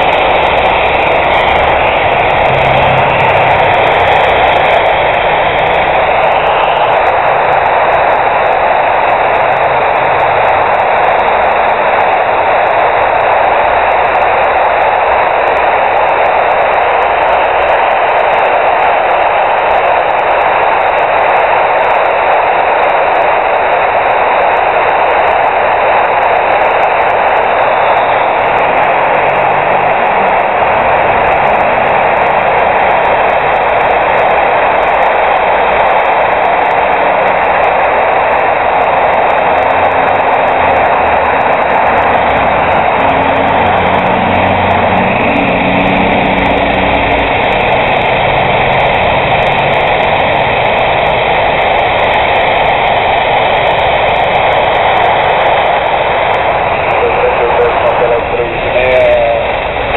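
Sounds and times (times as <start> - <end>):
radio static hiss: 0.0 - 59.9.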